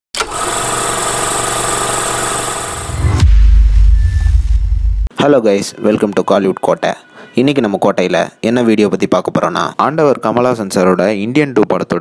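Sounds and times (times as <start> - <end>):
dense rushing sound: 2.8 - 5.1
deep bass boom: 2.9 - 5.1.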